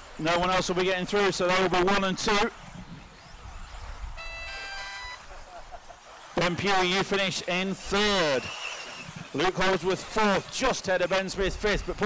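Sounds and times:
electronic beeping jingle: 0:04.2 - 0:05.3.

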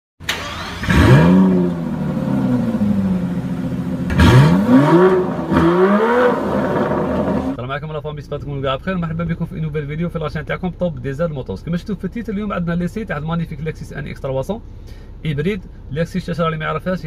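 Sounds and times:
car engine revving: 0:00.2 - 0:07.6.

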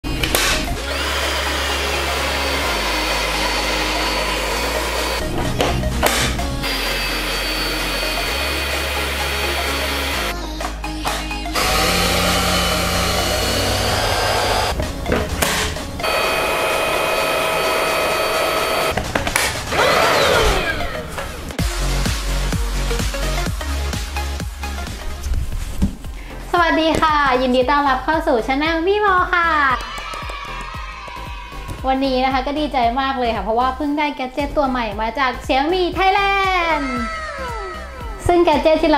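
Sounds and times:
background music with bass line: 0:00.0 - 0:16.8, 0:18.9 - 0:38.9
vacuum cleaner motor whine: 0:00.8 - 0:05.2, 0:06.2 - 0:10.3, 0:11.6 - 0:19.0, 0:19.7 - 0:21.6.

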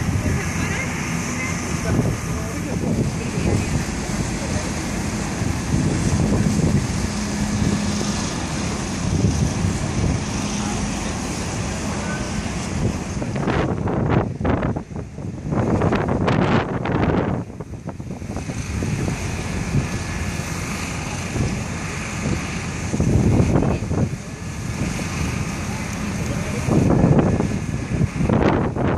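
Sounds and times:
tugboat diesel engines humming: 0:00.0 - 0:28.9
wind noise on microphone: 0:00.0 - 0:28.9.

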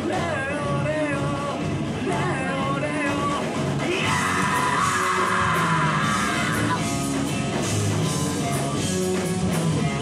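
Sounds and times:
live rock band playing: 0:00.0 - 0:10.0
long held shout: 0:04.0 - 0:06.8.

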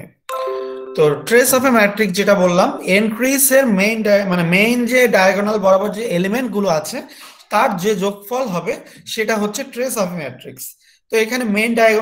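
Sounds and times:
person speaking: 0:00.0 - 0:12.0
notification chime descending tones: 0:00.3 - 0:02.1.

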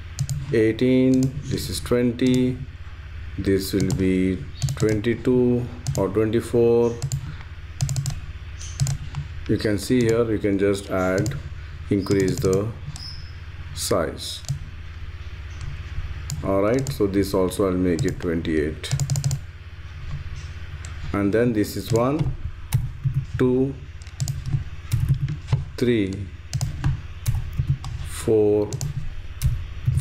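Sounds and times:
faint steady low hum: 0:00.0 - 0:30.0
keyboard keystrokes clicking: 0:00.2 - 0:00.4, 0:03.7 - 0:05.1, 0:05.8 - 0:06.1, 0:06.9 - 0:07.2, 0:07.8 - 0:09.2, 0:09.9 - 0:10.2, 0:10.9 - 0:11.4, 0:12.0 - 0:13.1, 0:17.9 - 0:18.3, 0:18.9 - 0:19.4, 0:24.0 - 0:25.4, 0:26.0 - 0:28.0, 0:28.6 - 0:29.6.

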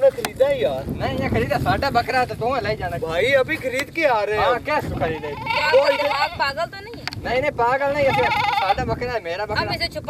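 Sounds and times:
goat bleating: 0:05.1 - 0:06.4, 0:08.1 - 0:08.8.

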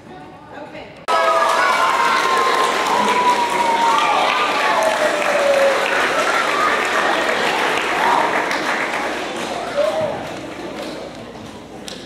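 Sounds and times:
shouted cheers: 0:01.1 - 0:10.2
audience applauding: 0:01.1 - 0:11.0.

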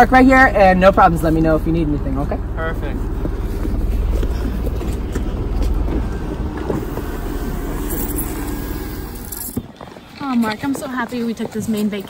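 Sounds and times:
car engine rumbling: 0:00.0 - 0:10.9.

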